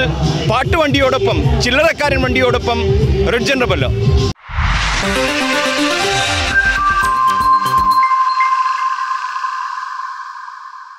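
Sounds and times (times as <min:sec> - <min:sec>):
bell-like chime chord ringing: 0:06.0 - 0:10.9.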